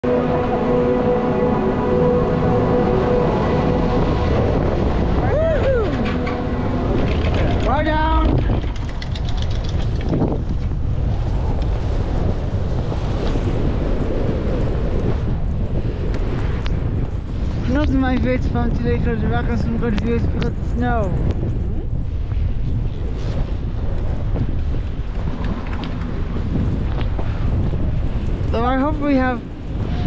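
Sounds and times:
steady machine hum: 0:00.0 - 0:09.3
wind rushing over microphone: 0:00.0 - 0:30.0.

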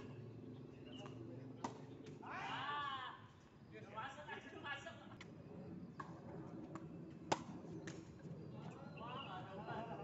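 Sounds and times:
racket hitting tennis ball: 0:07.3 - 0:07.6.

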